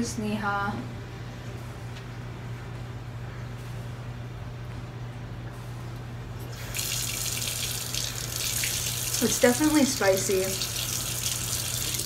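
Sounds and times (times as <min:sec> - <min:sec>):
water running into sink: 0:06.5 - 0:12.0.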